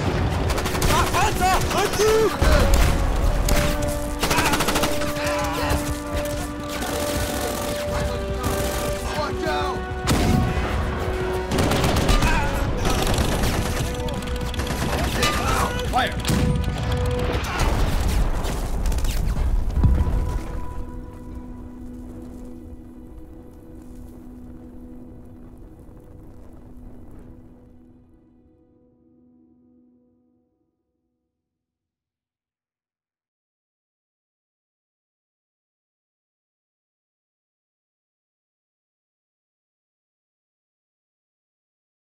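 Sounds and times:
explosions: 0.0s - 1.4s, 10.0s - 14.2s, 14.8s - 20.6s
heavy gunfire: 0.0s - 9.3s, 10.0s - 19.2s
orchestral music: 0.0s - 18.8s, 19.5s - 30.4s.

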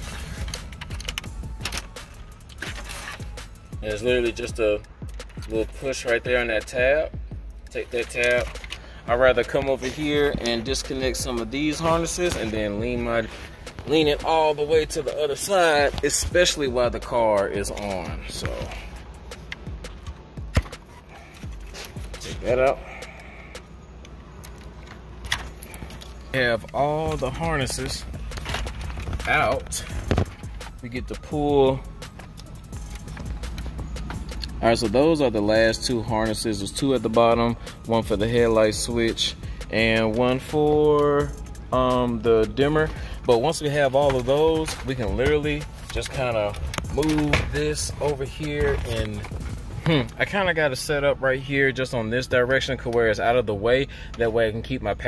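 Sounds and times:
background music: 0.0s - 55.0s
running car hum: 7.1s - 31.0s, 31.8s - 35.6s, 41.2s - 51.3s.

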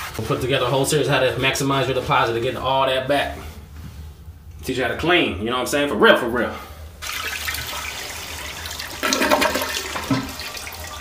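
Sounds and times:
toilet flushing: 7.0s - 11.0s.

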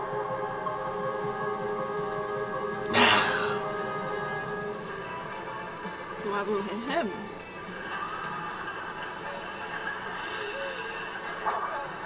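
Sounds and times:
quiet tv soundtrack: 0.0s - 12.0s
faint indistinct voices: 2.9s - 12.0s.

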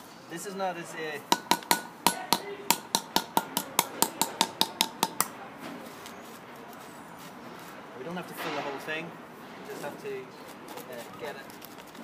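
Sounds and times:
hammer tapping metal cylinder: 1.3s - 5.3s.

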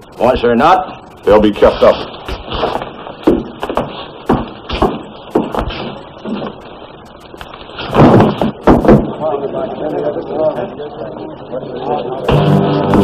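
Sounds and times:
thuds and knocks on wooden floor: 2.3s - 6.5s, 7.9s - 9.1s.

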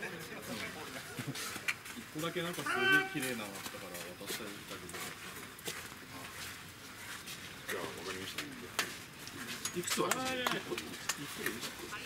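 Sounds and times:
man shouting high-pitched: 2.6s - 3.3s.

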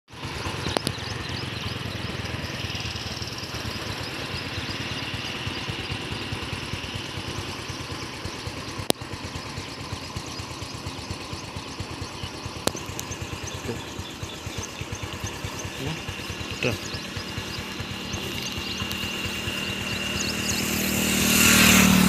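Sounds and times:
engine running steadily: 0.1s - 22.0s
sharp clicks: 0.6s - 1.2s, 8.8s - 9.1s, 12.4s - 21.0s.

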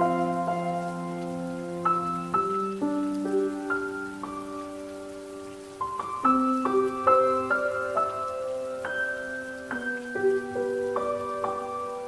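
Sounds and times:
calm piano music: 0.0s - 12.0s.

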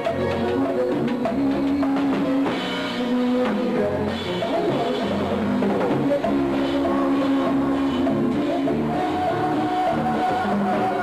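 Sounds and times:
band playing instrumental: 0.0s - 11.0s.

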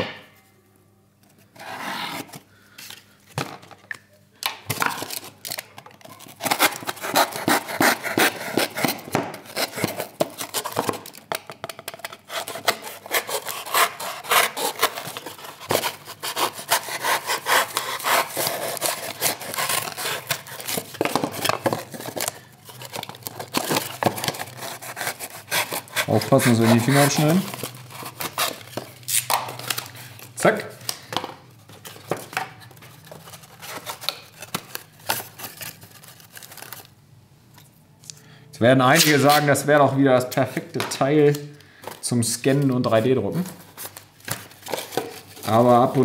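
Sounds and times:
knife sawing through cardboard: 1.6s - 2.3s, 6.4s - 10.8s, 12.3s - 22.2s, 22.8s - 28.6s.

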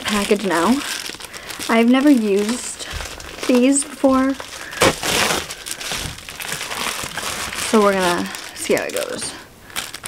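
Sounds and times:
packaging crinkling and rustling: 0.0s - 10.0s.

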